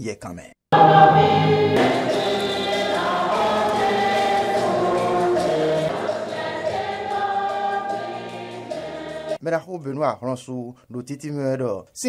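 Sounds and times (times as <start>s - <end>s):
church choir singing: 0.7s - 9.4s.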